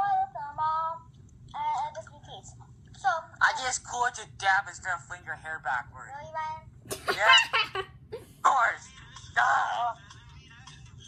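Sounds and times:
girl singing wordless phrases: 0:00.0 - 0:02.4.

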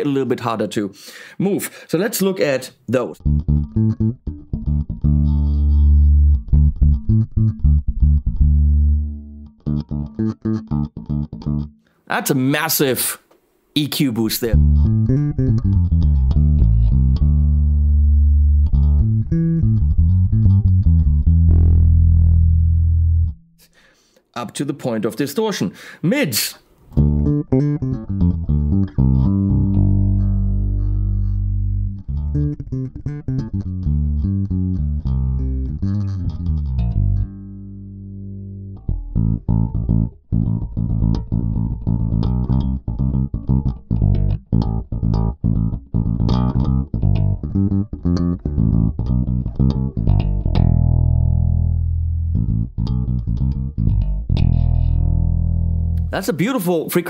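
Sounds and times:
electric bass played fingerstyle: 0:03.2 - 0:12.0, 0:14.4 - 0:23.8, 0:26.9 - 0:56.6.

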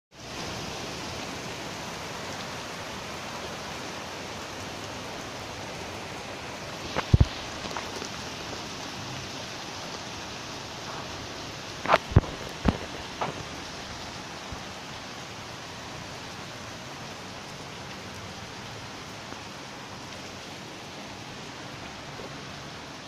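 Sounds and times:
steady rushing hiss: 0:00.2 - 0:23.0.

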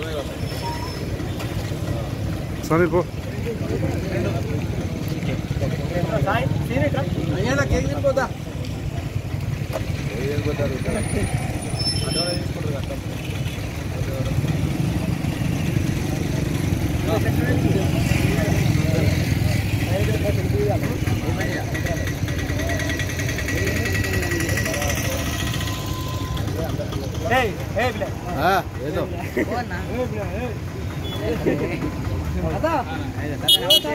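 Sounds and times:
low steady street rumble: 0:00.0 - 0:33.9.

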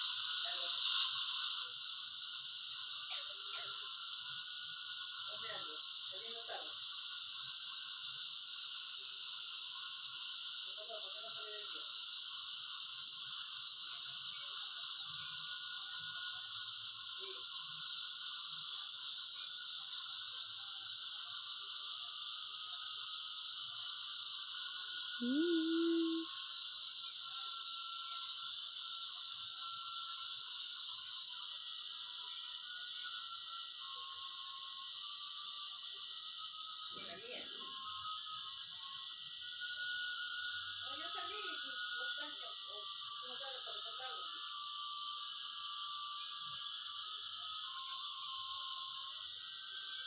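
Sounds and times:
swooping tone: 0:25.2 - 0:26.3.

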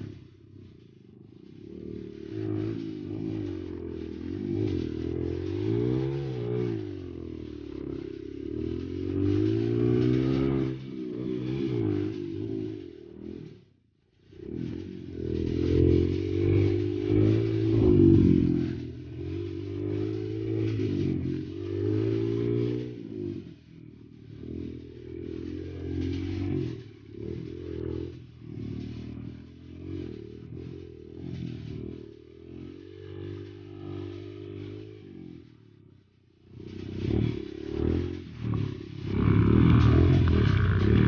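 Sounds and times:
dirt bike engine: 0:00.0 - 0:41.0
bike rattling: 0:01.1 - 0:13.3, 0:14.4 - 0:34.9, 0:36.5 - 0:41.0.

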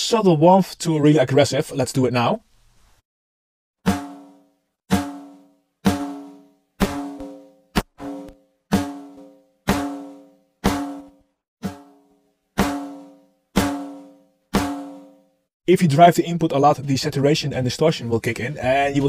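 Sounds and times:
distorted snare drum hits: 0:03.9 - 0:11.9, 0:12.6 - 0:15.2.

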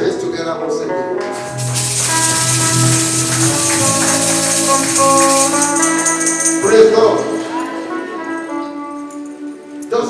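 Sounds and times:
keyboard chords: 0:01.1 - 0:09.9
tambourine shaking: 0:01.3 - 0:09.9.

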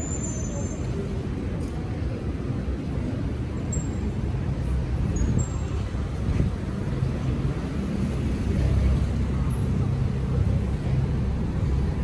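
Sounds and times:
low rumble of city traffic: 0:00.0 - 0:12.0
tram drawing up: 0:00.0 - 0:12.0.

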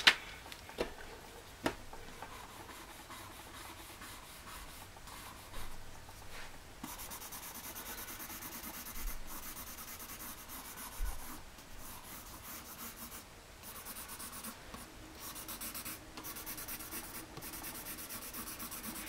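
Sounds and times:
pencil scratching on paper: 0:02.1 - 0:05.7, 0:06.8 - 0:19.0.

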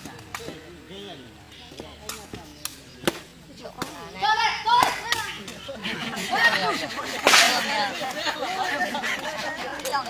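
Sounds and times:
people talking and calling: 0:00.0 - 0:10.0.

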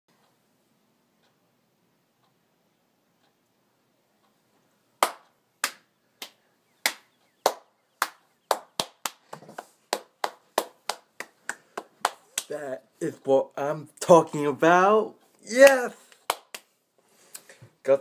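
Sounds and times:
person clapping hands: 0:05.0 - 0:12.6, 0:15.6 - 0:16.7.

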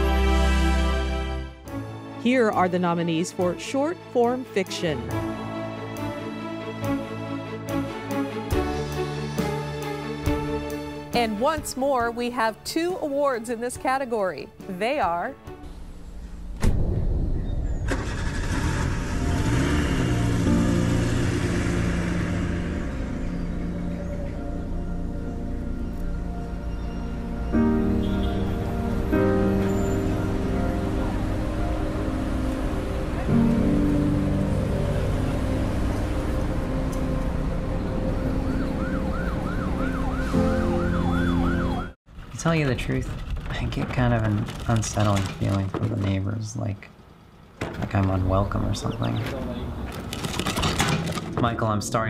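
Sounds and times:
low rumble: 0:16.1 - 0:27.3
car engine starting and running: 0:17.6 - 0:40.2
siren yelping: 0:37.9 - 0:42.0.

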